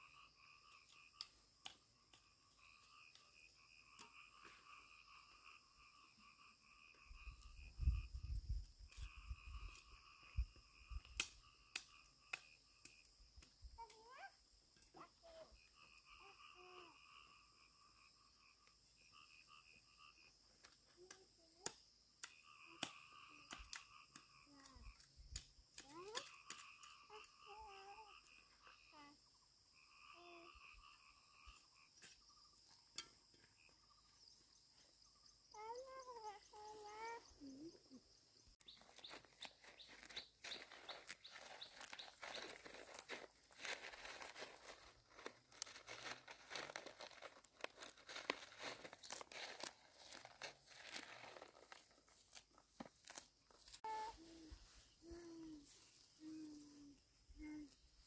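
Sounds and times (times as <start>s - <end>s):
high insect buzz: 0.0s - 14.2s, 14.9s - 58.0s
faint bird chirps: 33.7s - 42.6s
weeds rustling and crackling: 38.8s - 53.8s.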